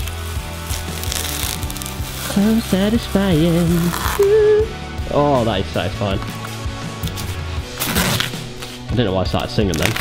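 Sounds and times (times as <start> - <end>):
masking tape peeling: 0.0 - 4.4, 7.1 - 8.7, 9.7 - 10.0
background music with bass: 0.0 - 10.0.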